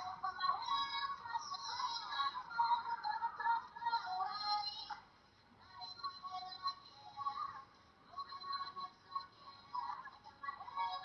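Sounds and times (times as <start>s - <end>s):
pop music with singing: 0.0s - 11.0s.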